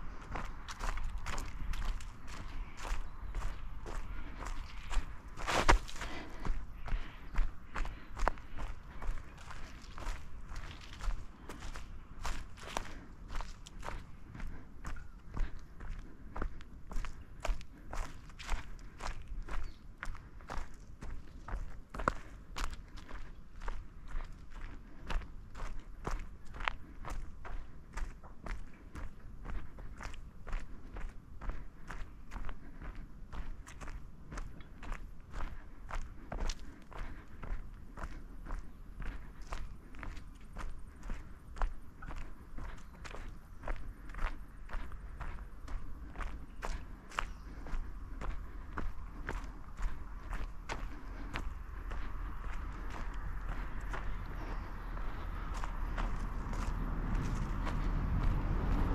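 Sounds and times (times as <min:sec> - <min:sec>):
footsteps on gravel: 0:00.0 - 0:58.9
low rumble: 0:47.7 - 0:58.9.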